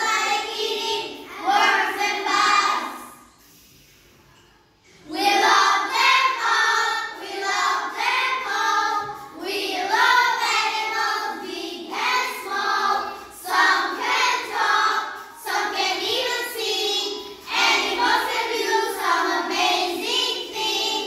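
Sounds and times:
children singing together: 0:00.0 - 0:03.4, 0:04.8 - 0:21.0.

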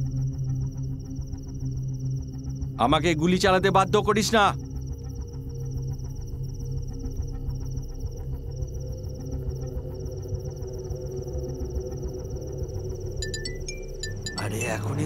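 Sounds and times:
crickets chirping: 0:00.0 - 0:15.0
low suspenseful drone: 0:00.0 - 0:15.0.

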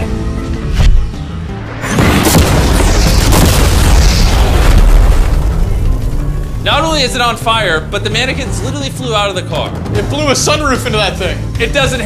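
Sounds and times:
explosion boom and rumble: 0:01.7 - 0:07.4.

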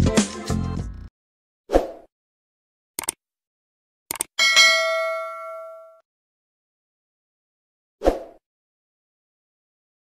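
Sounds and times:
mouse clicks: 0:03.0 - 0:03.2, 0:04.1 - 0:04.3
notification bell ding: 0:04.4 - 0:06.0.

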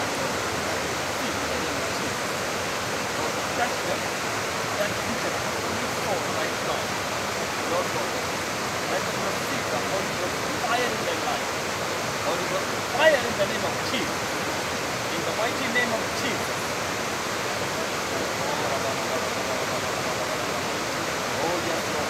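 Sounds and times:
steady rushing noise: 0:00.0 - 0:22.0
faint voices murmuring: 0:17.3 - 0:22.0.

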